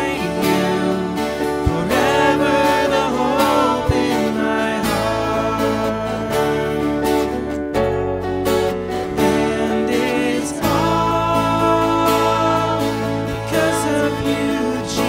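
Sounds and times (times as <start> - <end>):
people singing: 0.0 - 7.4, 9.0 - 15.0
acoustic guitar: 0.0 - 15.0.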